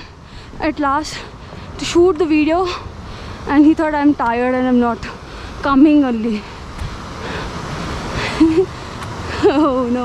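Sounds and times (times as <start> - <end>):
heavy breathing: 0.0 - 1.8, 6.3 - 9.4
river rushing: 0.0 - 10.0.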